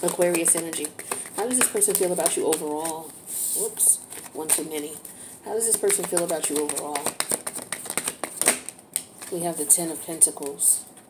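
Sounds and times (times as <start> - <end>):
cards being shuffled: 0.0 - 3.2, 4.0 - 9.5
card snap: 5.8 - 9.3.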